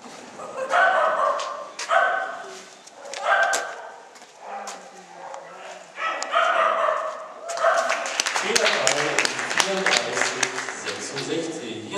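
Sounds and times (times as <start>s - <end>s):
dog barking and yipping: 0.4s - 8.0s
sharp claps: 7.5s - 11.6s.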